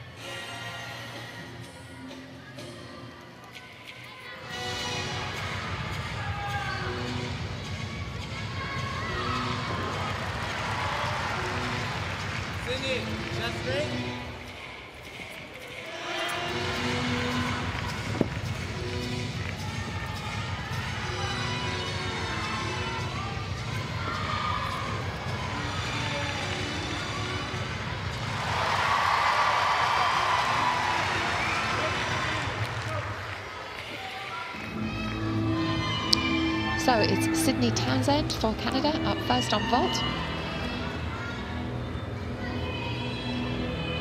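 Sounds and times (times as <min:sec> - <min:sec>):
crowd murmur: 0:00.0 - 0:44.0
music over public address: 0:00.0 - 0:44.0.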